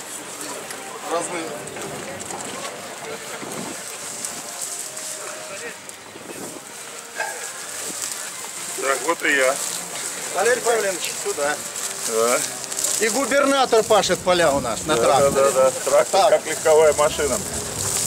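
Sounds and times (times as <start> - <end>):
people talking outdoors: 0.0 - 18.0.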